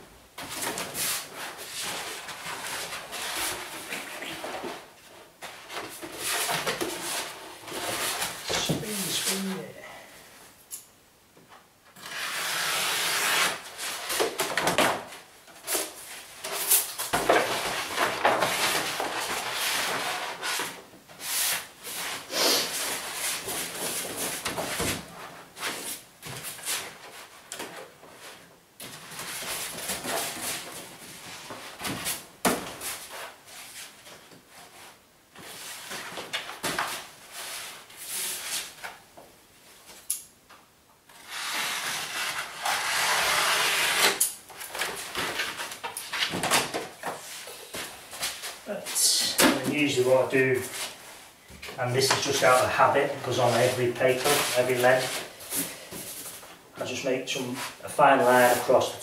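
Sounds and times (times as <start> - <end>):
wallpaper rustling and crackling: 0.4 - 9.6, 12.0 - 40.1, 41.0 - 59.0.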